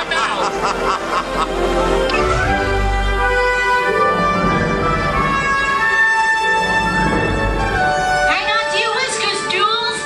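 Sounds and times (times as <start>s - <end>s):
orchestral music with held notes: 0.0s - 10.0s.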